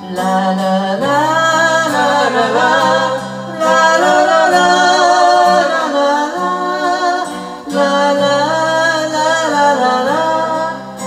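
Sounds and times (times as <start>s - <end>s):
acoustic guitar accompaniment: 0.0s - 11.0s.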